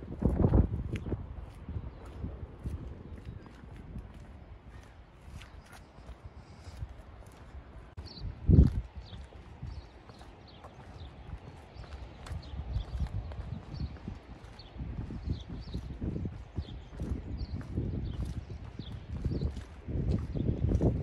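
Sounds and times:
footsteps on paved path: 0:00.0 - 0:21.0.

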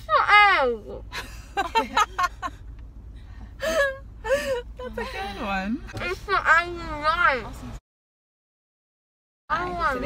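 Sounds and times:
car cabin rumble: 0:00.0 - 0:07.8
women laughing: 0:01.1 - 0:02.6, 0:03.6 - 0:05.4.

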